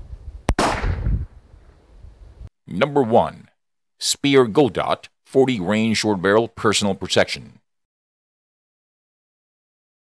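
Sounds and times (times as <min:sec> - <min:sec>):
gunshot with echo: 0:00.5 - 0:01.3.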